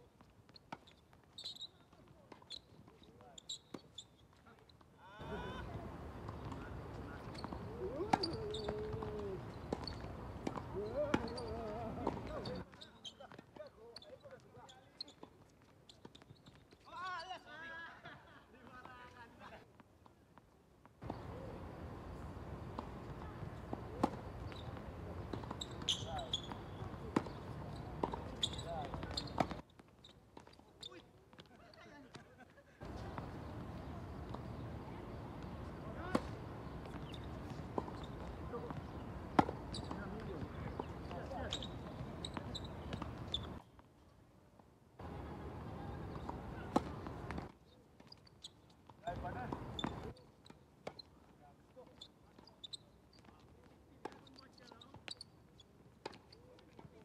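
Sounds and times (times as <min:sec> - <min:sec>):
tennis balls struck and bouncing: 0:05.2 - 0:12.7, 0:21.0 - 0:29.6, 0:32.8 - 0:43.6, 0:45.0 - 0:51.1.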